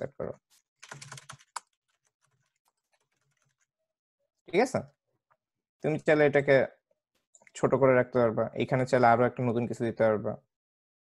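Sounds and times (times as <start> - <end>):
computer keyboard typing: 0.8 - 3.7.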